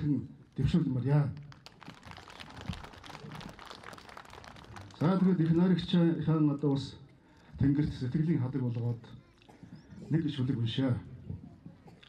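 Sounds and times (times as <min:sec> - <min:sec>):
audience clapping: 0:01.4 - 0:06.0.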